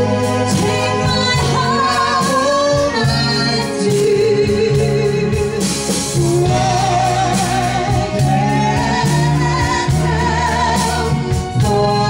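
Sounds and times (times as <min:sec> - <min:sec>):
live band playing: 0:00.0 - 0:12.0
man and woman singing duet: 0:00.0 - 0:12.0.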